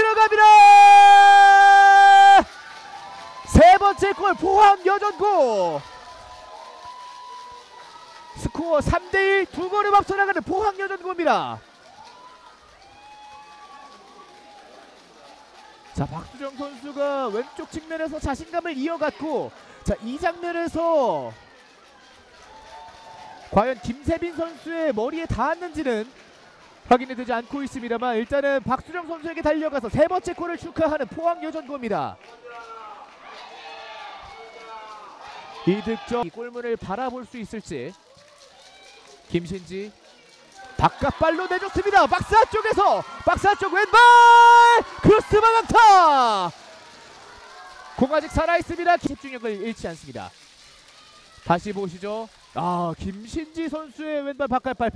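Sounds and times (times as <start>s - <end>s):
distant voices and cheering: 0.0s - 54.9s.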